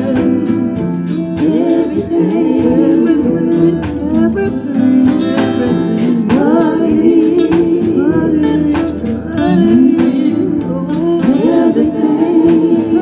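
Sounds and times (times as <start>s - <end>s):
drums: 0.0s - 13.0s
electric bass: 0.0s - 13.0s
guitar: 0.0s - 13.0s
women singing together: 0.0s - 13.0s.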